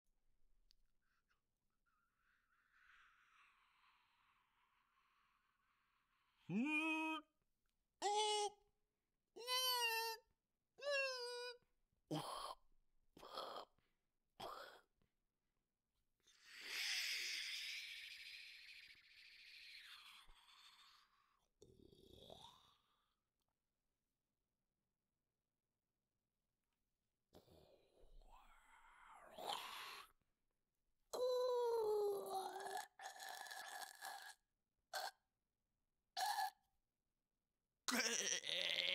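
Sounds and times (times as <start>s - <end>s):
person wailing like a shark: 6.5s - 7.3s.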